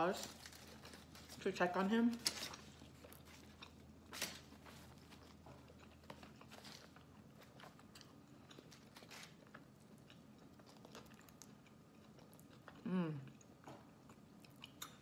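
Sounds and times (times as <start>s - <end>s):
close-up chewing: 2.2s - 15.0s.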